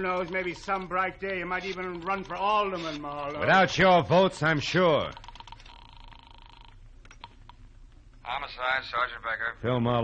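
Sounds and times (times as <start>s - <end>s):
telephone ringing tone: 4.3s - 6.8s.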